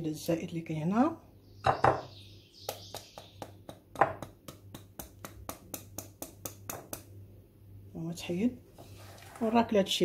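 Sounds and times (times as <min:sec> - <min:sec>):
louder knock: 0:01.7 - 0:02.1.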